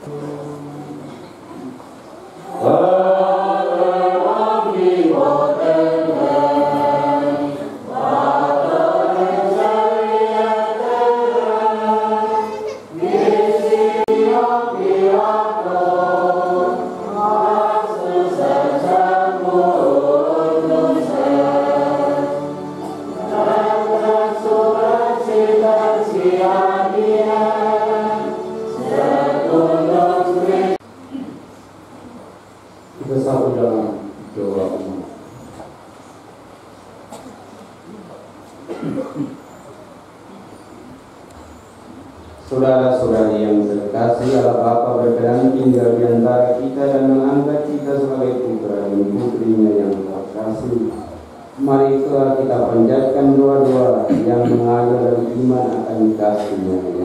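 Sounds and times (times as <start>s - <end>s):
church choir singing a hymn: 2.4s - 30.8s, 42.5s - 50.8s.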